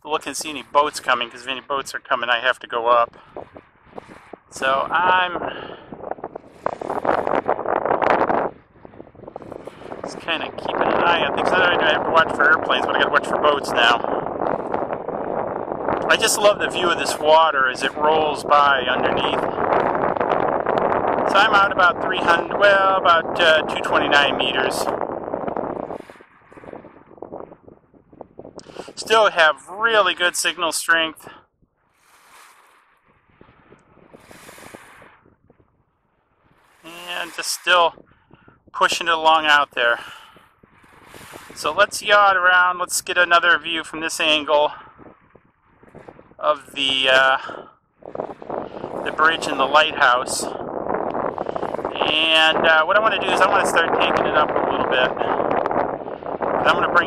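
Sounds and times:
wind buffeting microphone: 0:00.0 - 0:57.0
water washing on shore: 0:00.1 - 0:07.5, 0:08.2 - 0:14.8, 0:16.0 - 0:27.1, 0:28.6 - 0:35.2, 0:36.2 - 0:38.0, 0:38.8 - 0:50.6, 0:51.2 - 0:55.4, 0:56.0 - 0:57.0.

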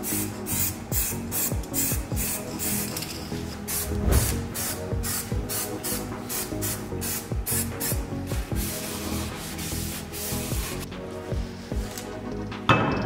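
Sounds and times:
electronic music with beat: 0:00.6 - 0:02.6.

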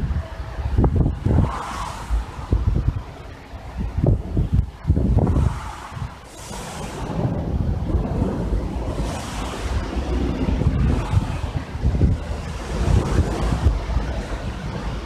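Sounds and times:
wind buffeting microphone: 0:00.0 - 0:15.0
wind hissing through grass and trees: 0:00.0 - 0:15.0.

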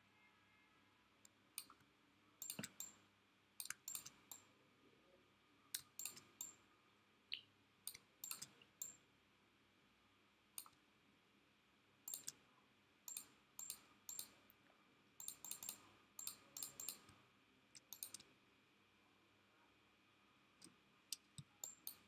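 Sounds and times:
computer mouse clicks: 0:01.2 - 0:03.0, 0:03.6 - 0:04.5, 0:05.7 - 0:06.6, 0:07.3 - 0:09.0, 0:10.6 - 0:10.8, 0:12.1 - 0:12.4, 0:13.1 - 0:14.5, 0:15.2 - 0:17.2, 0:17.8 - 0:18.3, 0:20.6 - 0:22.0.

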